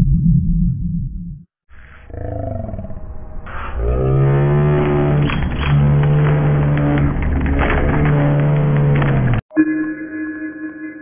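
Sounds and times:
slowed-down voice recording: 2.0 - 9.3.

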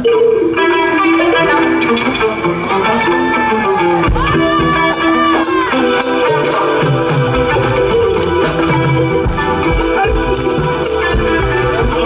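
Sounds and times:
live band music: 0.0 - 12.0
plucked guitar melody: 0.0 - 12.0.

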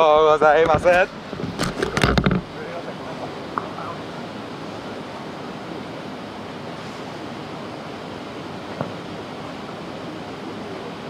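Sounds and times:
rushing background noise: 0.0 - 11.0.

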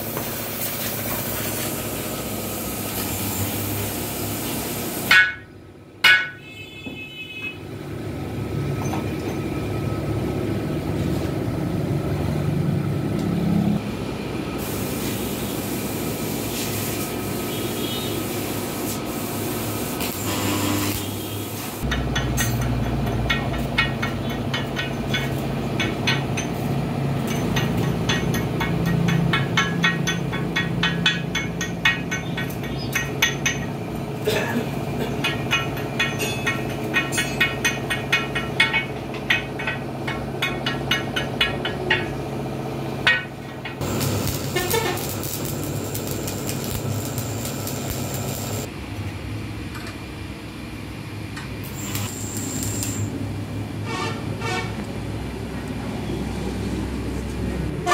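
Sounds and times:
workshop noise: 0.0 - 57.9
gas torch flame crackling: 14.6 - 21.9, 43.8 - 48.7, 51.6 - 53.2.

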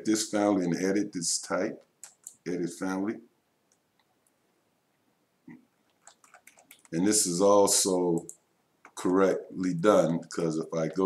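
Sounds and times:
computer mouse clicks: 1.8 - 2.4, 5.8 - 7.0, 8.2 - 9.0.

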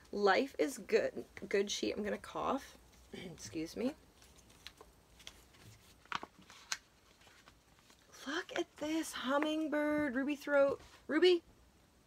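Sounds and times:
faint paper rustle: 2.8 - 8.8.

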